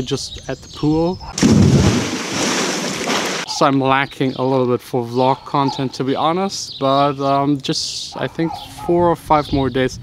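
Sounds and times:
people talking: 0.0s - 1.2s, 3.5s - 10.0s
churning water and spray: 1.4s - 3.5s
person splashing into pool: 1.4s - 3.5s.

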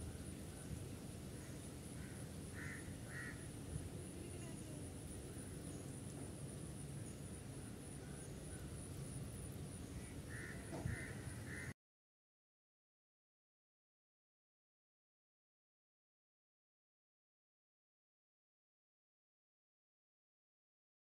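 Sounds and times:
faint background noise: 0.0s - 11.7s
bird's harsh calls: 1.3s - 3.5s, 9.8s - 11.7s.

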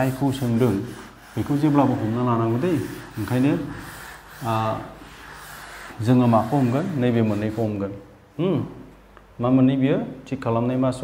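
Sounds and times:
duster rubbing on chalkboard: 0.0s - 8.0s.

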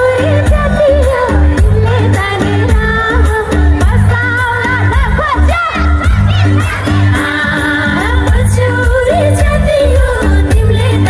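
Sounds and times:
amplified backing music: 0.0s - 11.0s
woman singing into a microphone: 0.0s - 11.0s.

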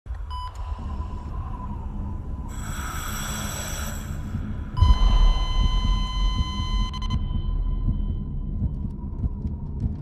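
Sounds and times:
low rumbling soundtrack drone: 0.1s - 10.0s.

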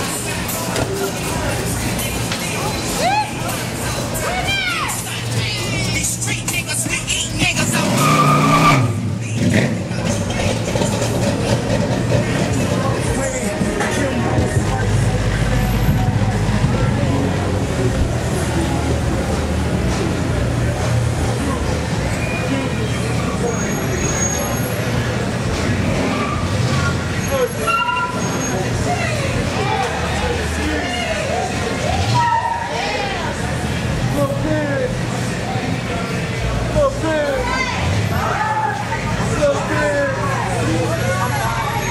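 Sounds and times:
crowd voices and shouting: 0.0s - 41.9s
street traffic engines: 0.0s - 41.9s
car engine revving: 6.0s - 27.6s.

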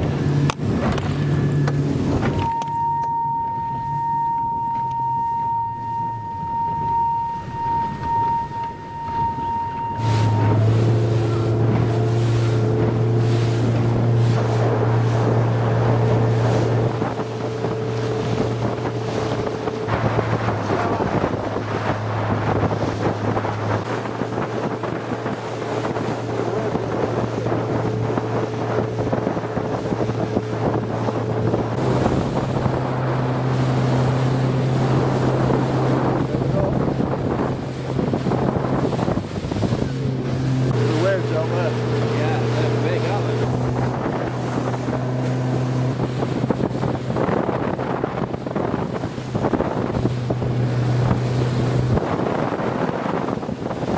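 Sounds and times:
outboard motor droning: 0.0s - 53.9s
water rushing past hull: 0.0s - 53.9s
wind buffeting microphone: 0.0s - 53.9s.

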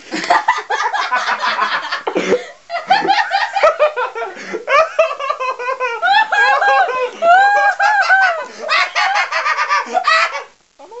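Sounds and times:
man laughing loudly: 0.1s - 10.6s.

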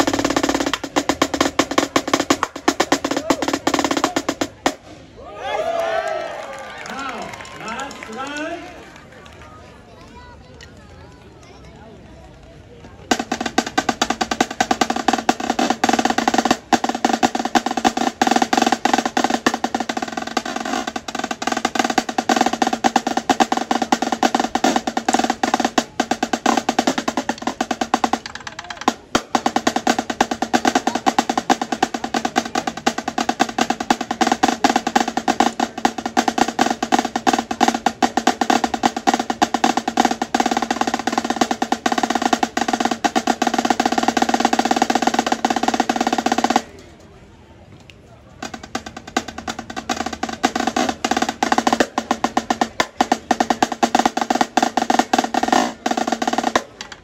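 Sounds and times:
snare drum played with sticks: 0.0s - 5.0s, 13.1s - 46.8s, 48.4s - 57.0s.

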